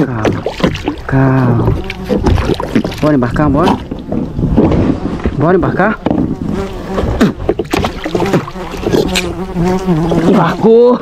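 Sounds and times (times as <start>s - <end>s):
beetles buzzing: 0.2s - 11.0s
knocks on plastic kayak: 7.0s - 8.6s.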